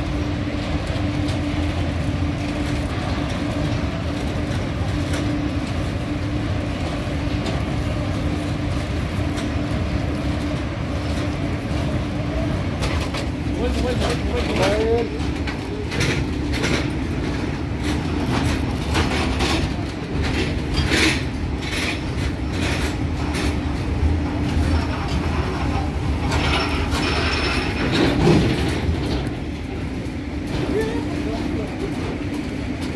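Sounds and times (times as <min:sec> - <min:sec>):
train rumbling past: 0:00.0 - 0:32.9
wheels clacking over rails: 0:00.0 - 0:32.9.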